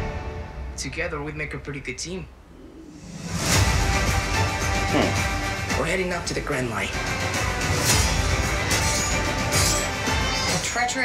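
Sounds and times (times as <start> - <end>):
dramatic trailer music: 2.9 - 11.0.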